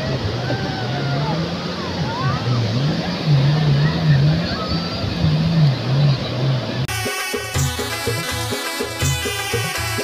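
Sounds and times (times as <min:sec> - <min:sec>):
beach crowd chatter: 0:00.0 - 0:10.0
jet ski engines droning: 0:00.0 - 0:10.0
waves washing: 0:00.0 - 0:10.0.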